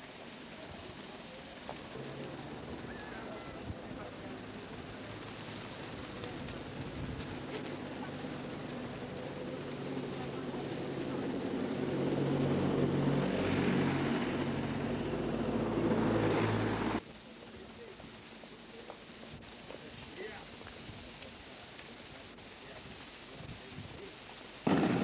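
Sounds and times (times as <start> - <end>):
vehicle engine humming: 1.3 - 17.0.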